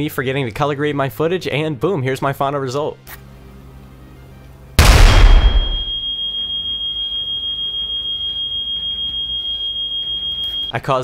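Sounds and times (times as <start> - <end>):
loud explosion: 4.8 - 6.0
smoke alarm pulsing tone: 4.8 - 10.7.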